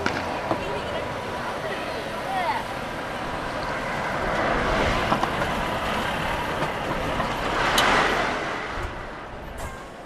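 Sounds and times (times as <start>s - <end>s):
vehicle passing close by: 0.1s - 10.0s.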